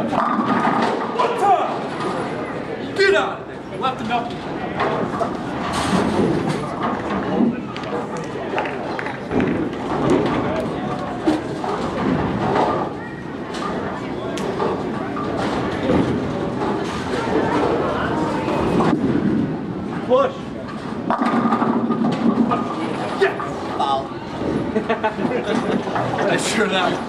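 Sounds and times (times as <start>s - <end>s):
bowling balls and pins clattering: 0.0s - 1.2s, 4.7s - 20.0s, 20.6s - 26.4s
murmur of voices: 0.0s - 27.0s.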